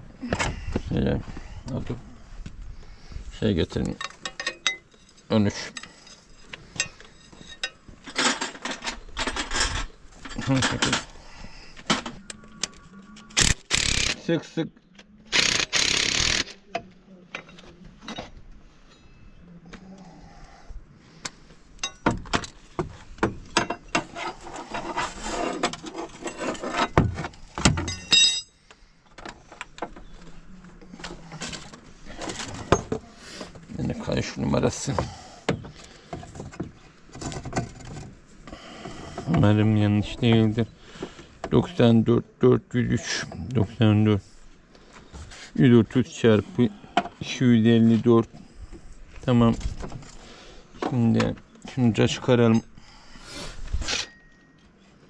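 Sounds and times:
metal tools clinking on engine parts: 0:03.7 - 0:11.2, 0:21.8 - 0:22.6, 0:23.3 - 0:27.1, 0:27.7 - 0:28.6, 0:53.9 - 0:55.0.

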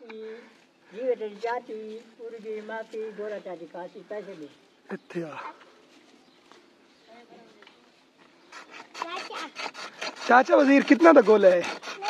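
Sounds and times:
ice scraping over shaver blade: 0:08.5 - 0:12.0.

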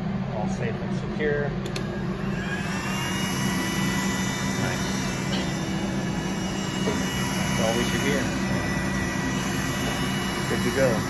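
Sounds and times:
low hum: 0:00.0 - 0:11.0
small motor whine: 0:01.7 - 0:11.0.

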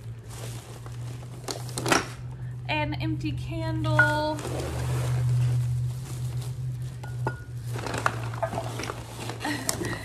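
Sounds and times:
plastic bag rustling: 0:00.0 - 0:02.6, 0:03.8 - 0:10.0.

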